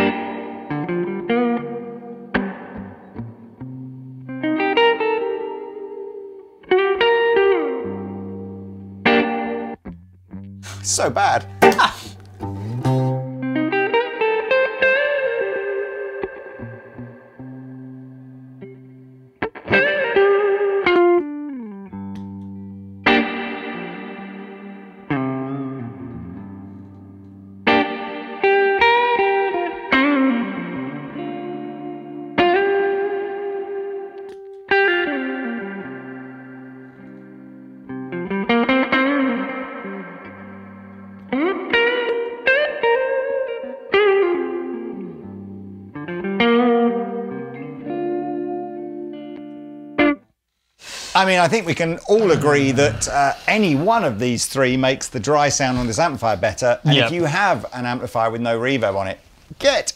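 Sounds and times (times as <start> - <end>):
electric guitar with reverb: 0.0 - 54.8.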